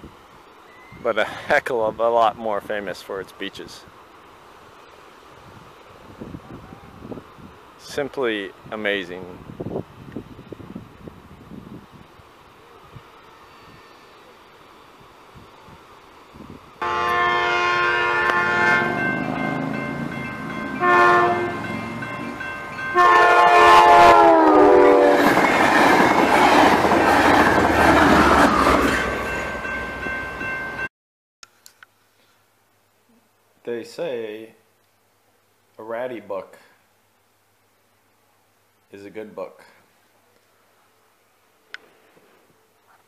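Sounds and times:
passing train: 0.0s - 30.9s
train horn blasts: 16.8s - 25.4s.

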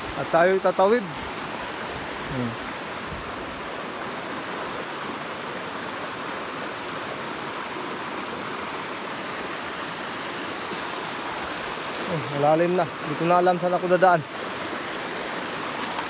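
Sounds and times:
water rushing over rocks: 0.0s - 16.0s.

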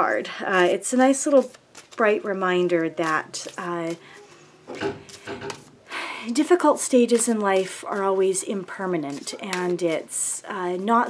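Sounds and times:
soft rubbing and handling: 0.5s - 11.0s.

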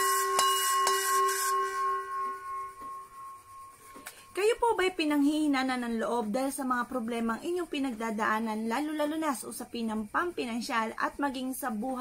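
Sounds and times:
singing bowl ringing: 0.0s - 4.9s.

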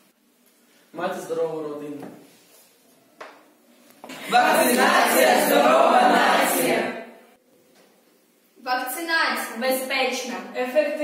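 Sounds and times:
group singing in unison: 4.1s - 7.3s.

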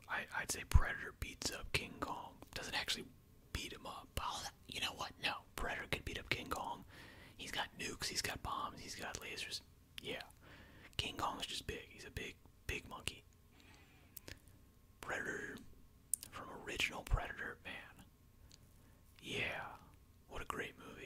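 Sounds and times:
man whispering: 0.0s - 14.4s, 15.0s - 18.1s, 19.2s - 21.0s.

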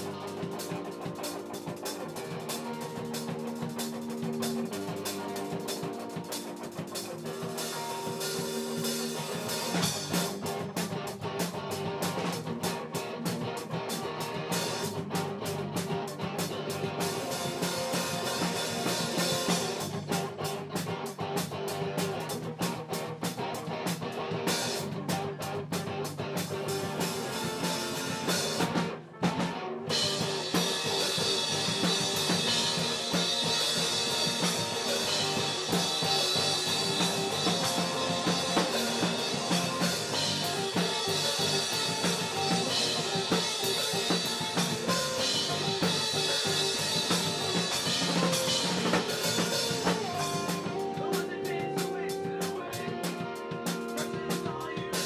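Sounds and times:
drum strikes: 0.0s - 55.0s
live rock band playing: 0.0s - 55.0s.

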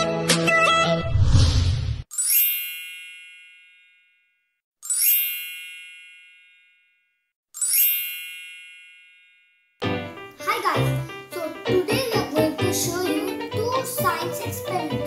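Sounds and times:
bright chime: 2.1s - 4.2s, 4.8s - 7.0s, 7.6s - 9.8s.

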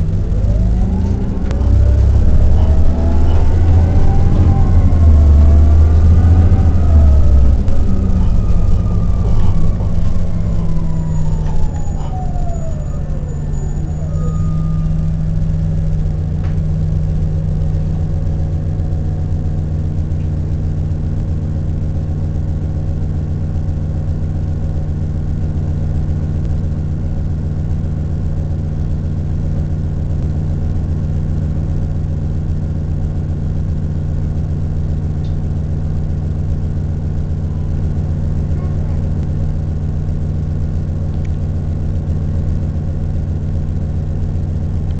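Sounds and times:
bus engine humming: 0.0s - 45.0s.

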